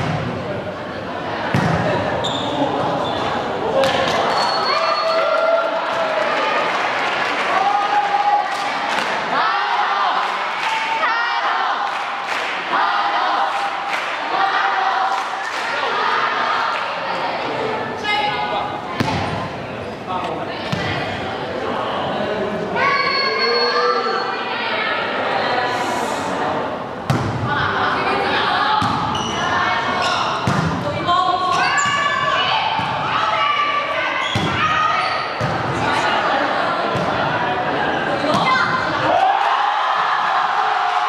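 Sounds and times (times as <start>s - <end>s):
players and spectators voices: 0.0s - 41.0s
volleyball hits: 1.5s - 2.1s, 19.0s - 19.5s, 27.1s - 27.5s, 28.8s - 29.2s, 30.4s - 31.0s, 32.7s - 33.1s, 34.3s - 34.7s
volleyball bouncing on wooden floor: 30.4s - 30.8s.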